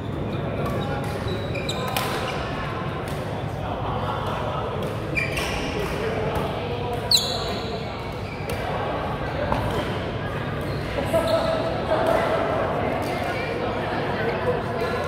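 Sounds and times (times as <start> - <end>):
shoes squeaking on court floor: 0.0 - 2.5, 5.0 - 5.8, 7.0 - 8.7, 10.4 - 11.8
background chatter: 0.0 - 15.0.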